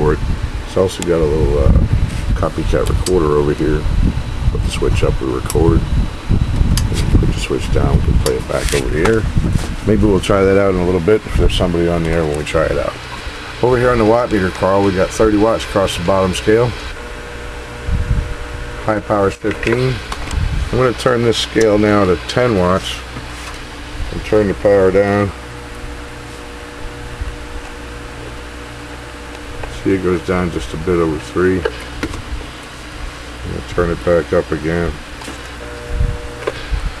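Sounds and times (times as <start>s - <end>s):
faint steady whine: 0.0s - 37.0s
steady low hum: 0.0s - 37.0s
sharp click: 2.8s - 3.2s
faint steady tone: 35.6s - 36.7s.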